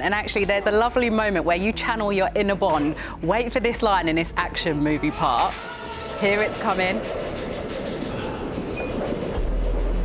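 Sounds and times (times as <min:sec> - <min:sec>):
train carriage rumble: 0:00.0 - 0:10.0
deep low hum: 0:06.3 - 0:10.0.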